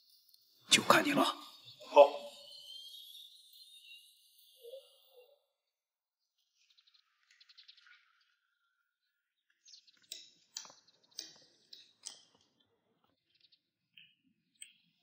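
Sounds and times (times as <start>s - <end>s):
faint high bird chirps: 0.0s - 15.0s.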